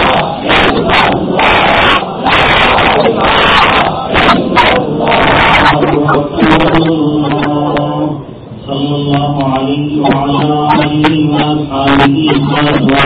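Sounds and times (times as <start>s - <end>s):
man chanting melodically: 0.0s - 13.0s.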